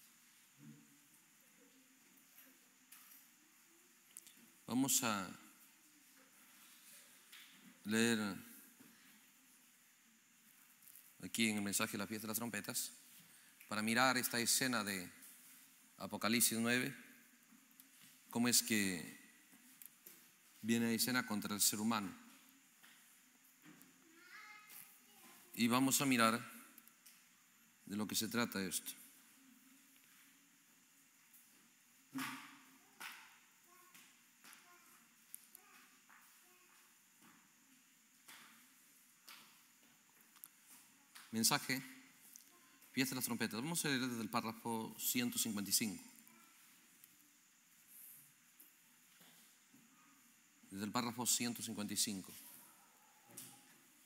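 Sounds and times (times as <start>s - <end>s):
light steady hiss: 0.0s - 54.0s.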